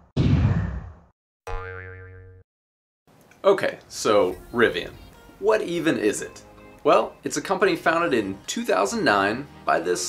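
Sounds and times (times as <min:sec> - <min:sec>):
cartoon boing twang: 0:01.5 - 0:02.4.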